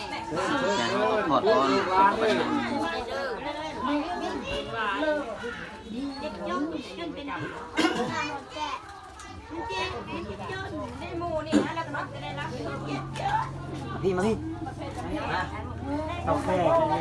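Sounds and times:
people talking over one another: 0.0 - 17.0
children's voices: 2.4 - 14.0.

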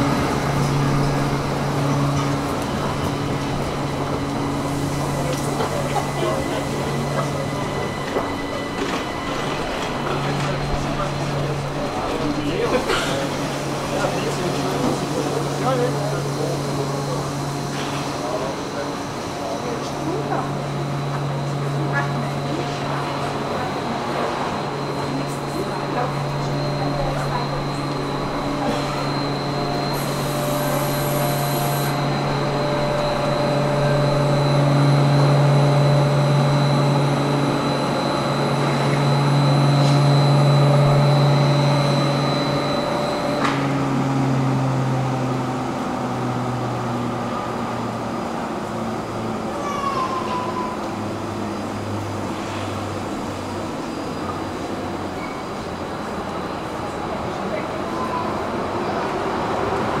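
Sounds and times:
train electrical hum: 0.0 - 60.0
train pulling away: 0.0 - 60.0
thin high whine: 24.9 - 44.2.

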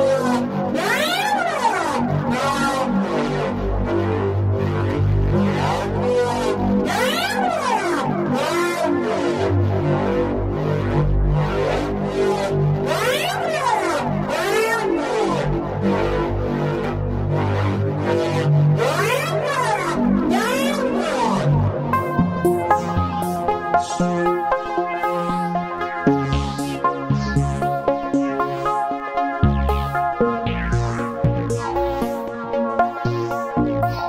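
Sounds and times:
pulsing synthesizer pattern: 0.0 - 34.0
low bass notes: 2.9 - 7.0, 9.6 - 34.0
rising and falling synth sweeps: 18.8 - 34.0.

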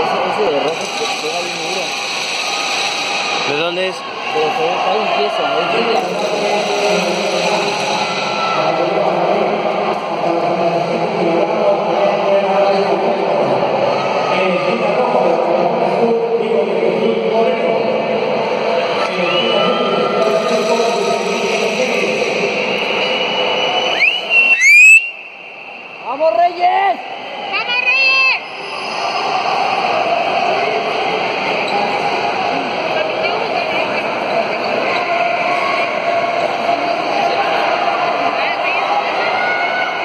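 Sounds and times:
crowd talking in echoing hall: 0.0 - 40.0.

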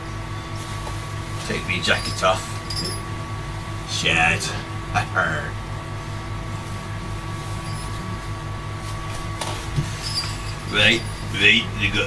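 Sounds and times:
appliance electrical hum: 0.0 - 12.0
high steady whine: 0.0 - 12.0.

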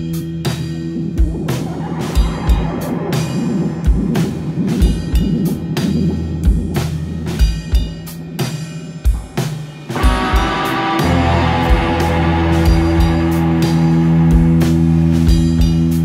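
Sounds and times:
live rock band playing: 0.0 - 16.0
snare or cymbal hits: 0.0 - 16.0.

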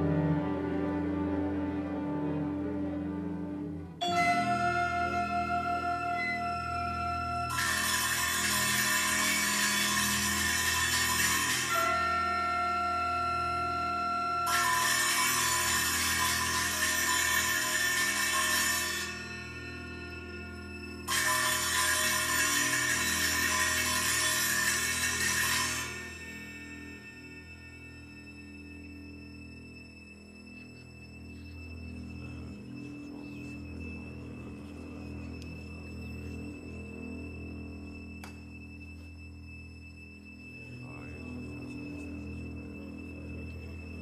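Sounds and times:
low drone of strings and bass: 0.0 - 44.0.

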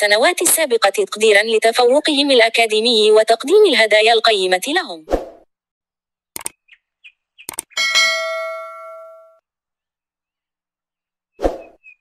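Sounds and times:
quick clicks: 6.4 - 6.6, 7.4 - 7.8
bell-like ding: 7.8 - 9.4.

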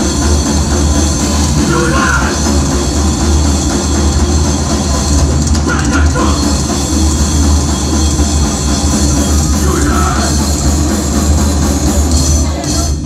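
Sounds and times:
metal band playing live: 0.0 - 13.0.

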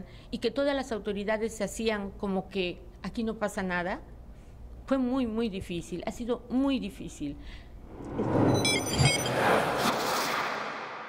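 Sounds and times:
rising electronic whoosh: 7.8 - 11.0
short high beeping tones: 8.0 - 9.6.

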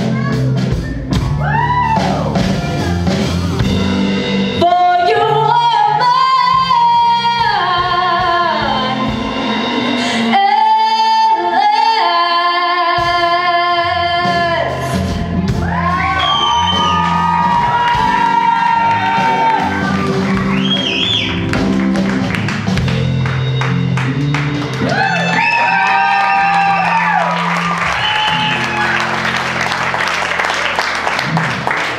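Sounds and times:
drums: 0.0 - 31.9
audience applause and cheering: 1.1 - 3.6, 15.4 - 31.9
woman singing with vibrato: 4.6 - 15.2
electric guitar: 14.0 - 31.9.

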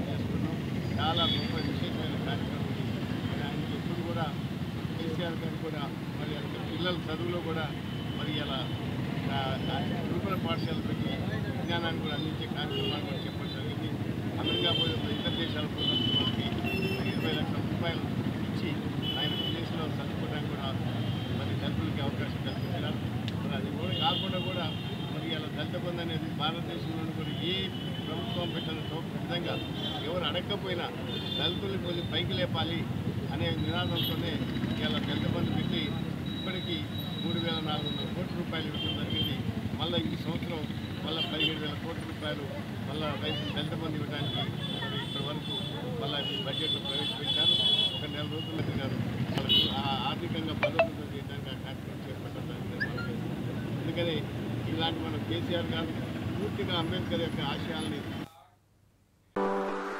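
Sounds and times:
street noise: 0.0 - 58.3
man speaking: 49.7 - 53.4.

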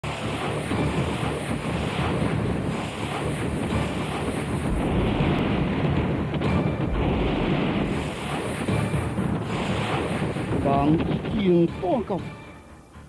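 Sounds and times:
loud rushing wind effect: 0.0 - 11.3.

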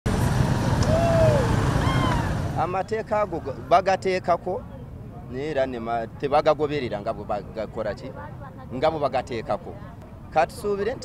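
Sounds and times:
traffic rumble: 0.1 - 11.0.

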